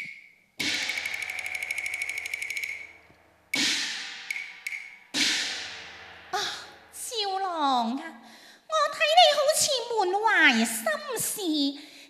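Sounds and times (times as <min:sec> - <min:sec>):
ringing percussion strikes: 0:00.0 - 0:07.2
percussion roll: 0:00.0 - 0:08.2.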